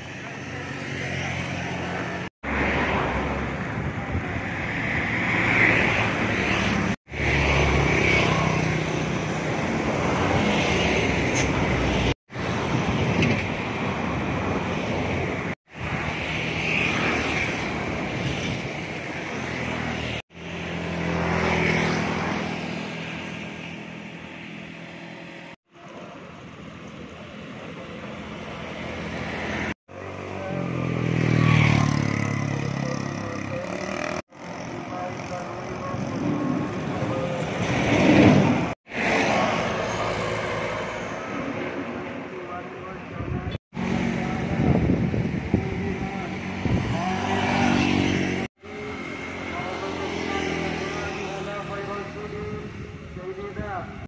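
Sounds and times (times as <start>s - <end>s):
vehicles passing by: 0.0s - 54.0s.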